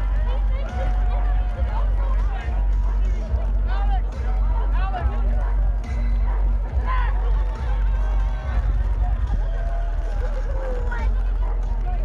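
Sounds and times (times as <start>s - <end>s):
crowd shouting and whooping: 0.0s - 12.0s
electronic dance music with heavy bass: 0.0s - 12.0s.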